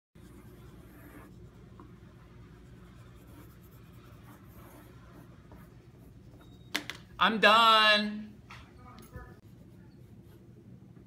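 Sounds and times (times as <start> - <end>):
pencil scratching on paper: 0.2 - 6.6, 9.3 - 10.6
low room hum: 0.2 - 11.0.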